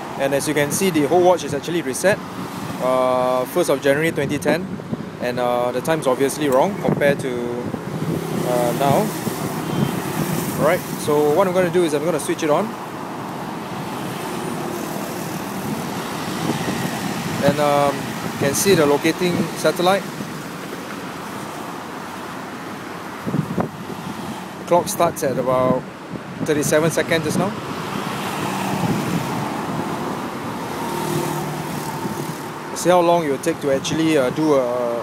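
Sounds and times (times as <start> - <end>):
distant road traffic hum: 0.0 - 35.0
outdoor background noise: 0.0 - 35.0.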